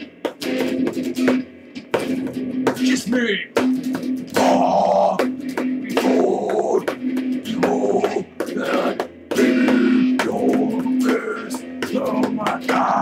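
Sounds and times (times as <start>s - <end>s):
voices singing and yelling: 7.5s - 13.0s.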